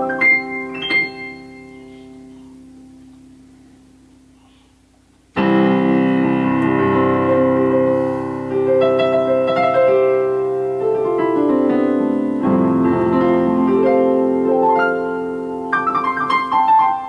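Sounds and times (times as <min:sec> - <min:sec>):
digital piano chords: 0:00.0 - 0:04.4, 0:05.2 - 0:17.0.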